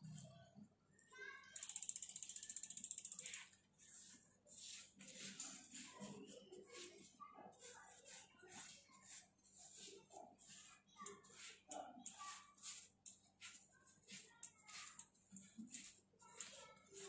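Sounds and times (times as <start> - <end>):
bicycle freehub ratcheting clicks: 1.6 - 3.6
wet sponge wiping tyre: 3.8 - 11.7.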